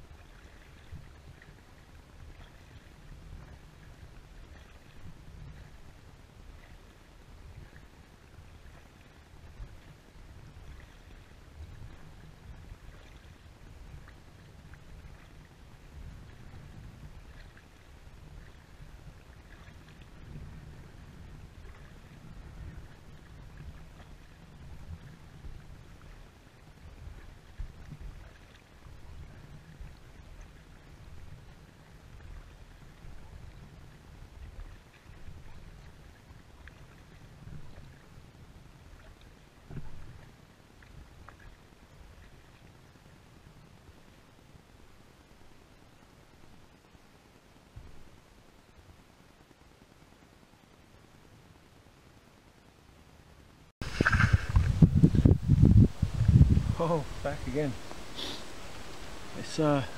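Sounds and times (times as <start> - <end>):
paddle splashes and drips: 0.0 - 49.6, 53.8 - 59.9
wind and water rumble: 0.0 - 59.9.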